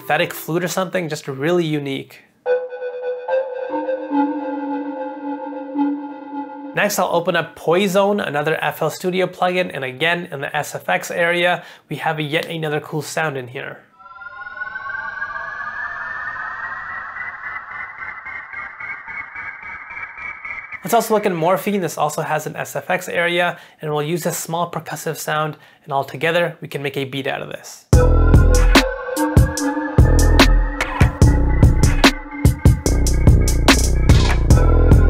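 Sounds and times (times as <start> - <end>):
synthetic flute notes: 2.5 - 6.8, 13.9 - 20.2.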